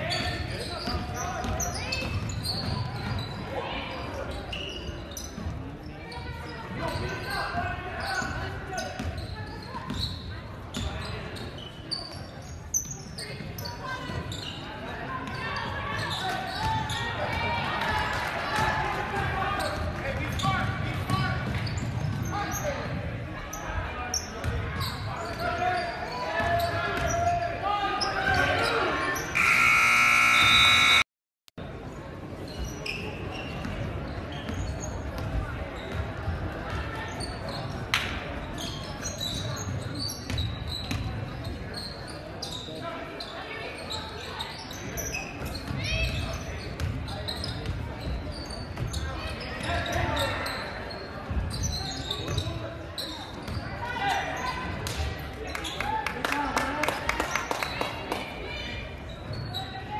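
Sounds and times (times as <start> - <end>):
crowd chatter: 0.0 - 31.0, 31.6 - 59.9
scoreboard buzzer: 29.3 - 31.1.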